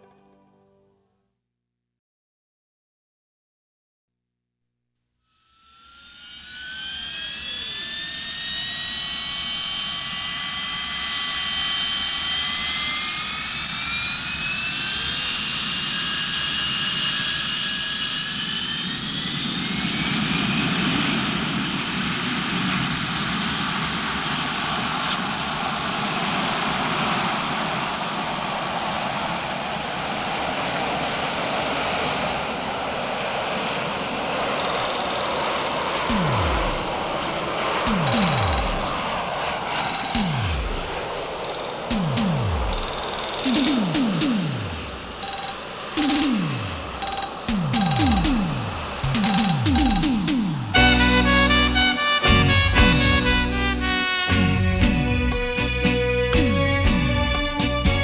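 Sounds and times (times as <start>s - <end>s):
jet engine spooling up: 5.4s - 58.0s.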